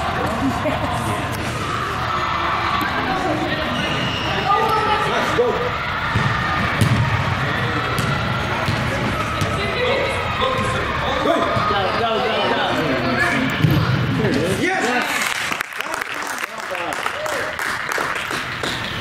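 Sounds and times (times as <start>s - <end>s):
people calling out in echoing hall: 0.0s - 13.5s
ball thuds: 6.1s - 7.2s.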